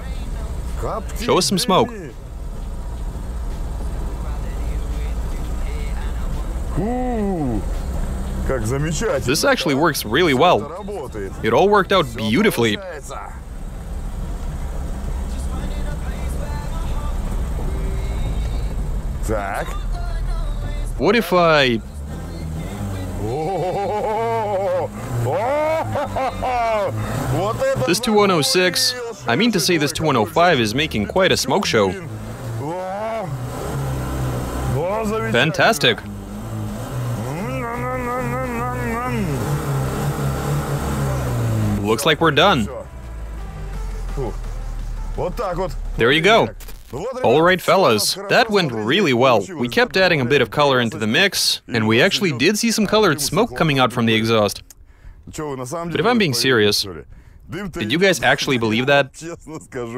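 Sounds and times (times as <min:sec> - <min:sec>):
car engine running: 0:00.0 - 0:59.1.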